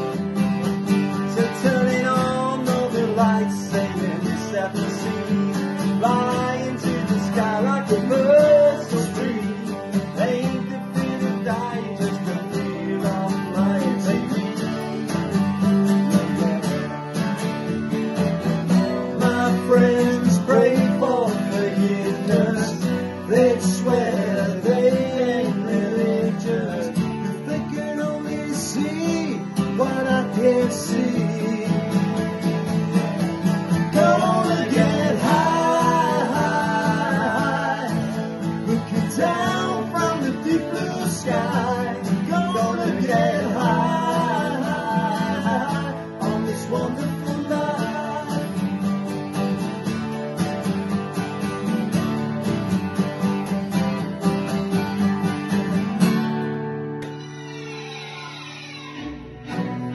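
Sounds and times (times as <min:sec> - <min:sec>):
acoustic guitars strummed: 0:00.0 - 0:59.9
men singing wordless melody: 0:01.3 - 0:14.6, 0:19.1 - 0:32.6, 0:33.7 - 0:48.6.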